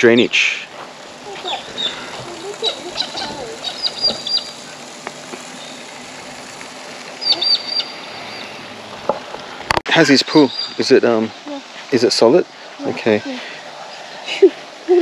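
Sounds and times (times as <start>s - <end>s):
small birds chirping: 0.0s - 8.8s, 10.0s - 11.8s
outdoor background hum: 0.0s - 15.0s.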